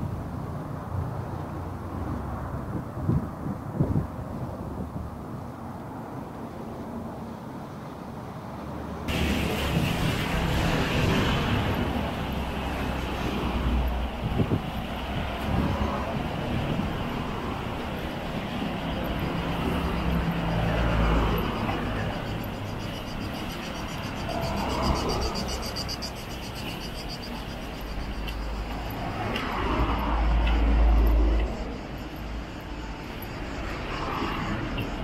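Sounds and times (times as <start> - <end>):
cars passing with low rumble: 0.0 - 35.0.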